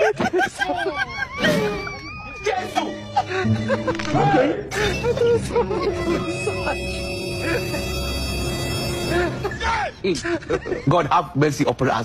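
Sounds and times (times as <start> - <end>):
woman laughing: 0.0 - 2.2, 4.7 - 8.2
background music: 0.0 - 12.0.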